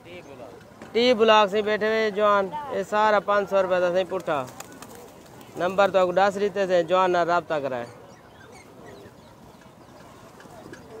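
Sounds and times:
low background voices: 1.9 - 11.0
pigeons cooing: 7.8 - 11.0.

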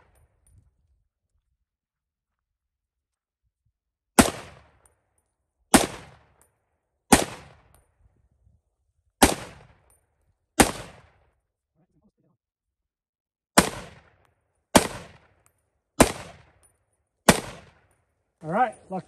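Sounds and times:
rifle shots with echo: 4.2 - 4.9, 5.7 - 6.4, 7.1 - 7.8, 9.2 - 9.9, 10.6 - 11.2, 13.6 - 15.4, 16.0 - 16.6, 17.3 - 17.9.

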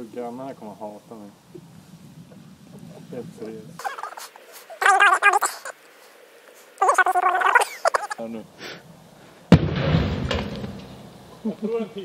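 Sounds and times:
voices: 0.0 - 8.9
gas bottle bursting bang: 9.5 - 11.1.

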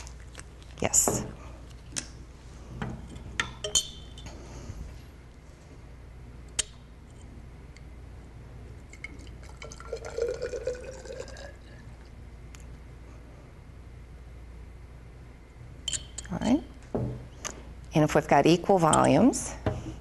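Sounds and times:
liquid pouring into glass tube: 8.8 - 12.2
faint gurgle of filling tube: 8.9 - 12.2.

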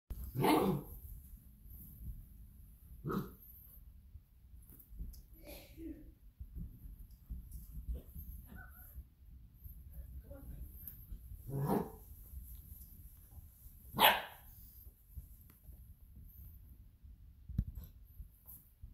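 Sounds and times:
dog barking: 0.4 - 0.9, 14.0 - 14.5.

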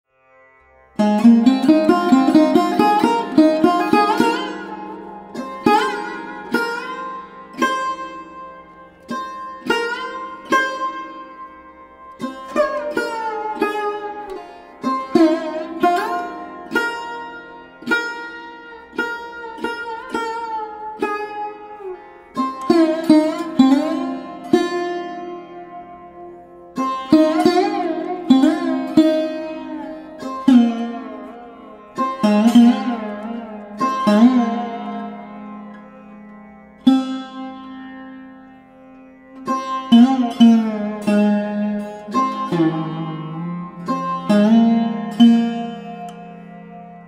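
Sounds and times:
plucked string instrument solo: 0.4 - 47.0.

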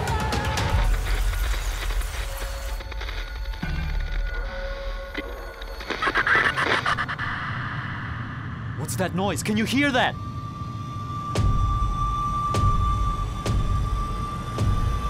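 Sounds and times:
deep rumbling drone: 0.5 - 15.0
swell of noise: 6.8 - 15.0.

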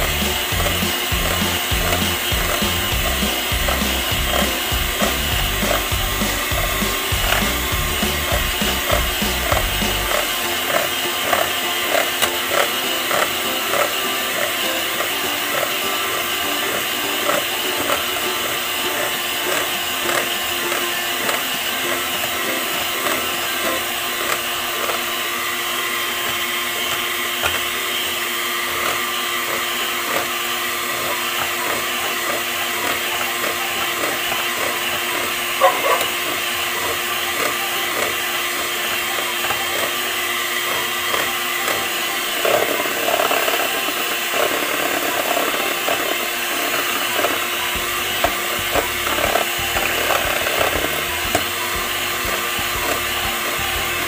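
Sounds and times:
electric hand mixer whirring: 0.0 - 54.0
mixer beaters knocking on bowl: 0.0 - 54.0.

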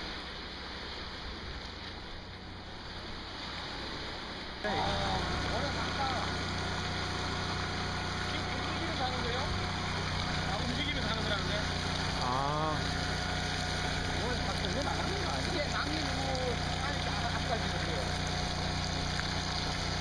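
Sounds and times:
pump machine hum: 0.0 - 20.0
sand and water discharging: 0.0 - 20.0.

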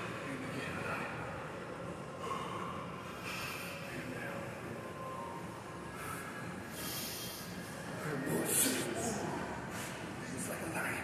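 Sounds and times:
low background noise: 0.0 - 11.0.

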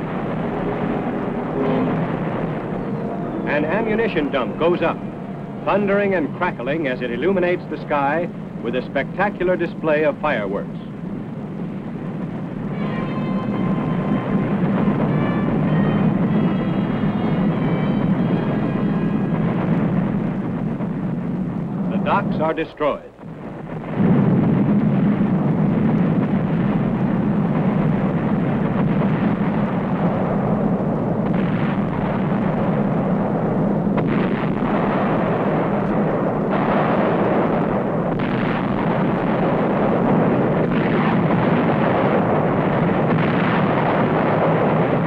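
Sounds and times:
demolition blast rumble: 0.0 - 45.0.

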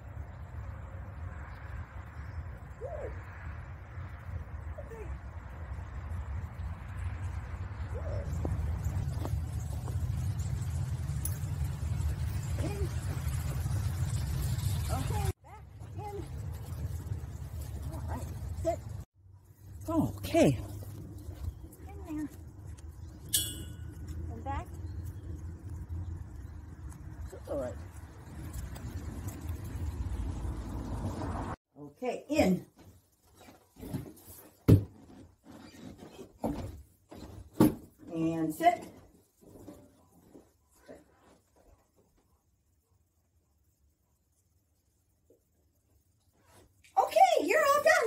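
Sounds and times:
low outdoor rumble: 0.0 - 31.6.

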